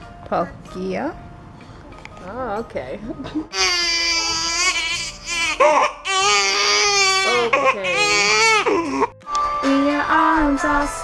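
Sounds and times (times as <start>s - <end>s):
baby crying: 3.5s - 9.2s.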